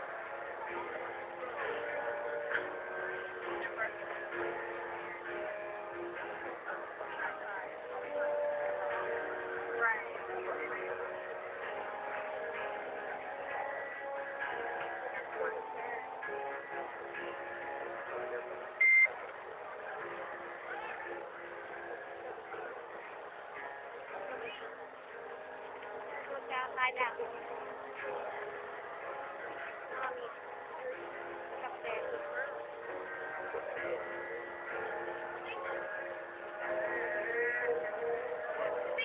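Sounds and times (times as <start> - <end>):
high-pitched beep: 18.8 - 19.1.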